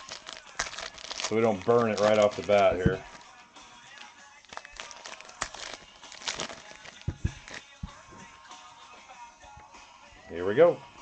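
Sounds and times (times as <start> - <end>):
foil wrappers rustling: 0.0 - 7.8
faint background music: 0.0 - 11.0.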